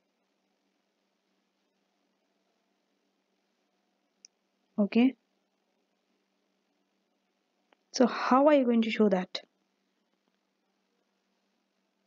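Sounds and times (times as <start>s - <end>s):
faint click: 4.2s - 4.4s.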